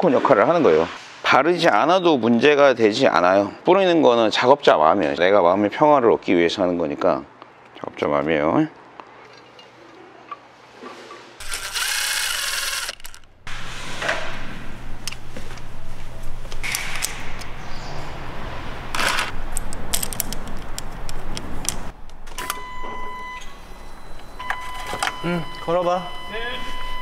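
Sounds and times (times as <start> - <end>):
steady low hum: 11.4 - 22.3.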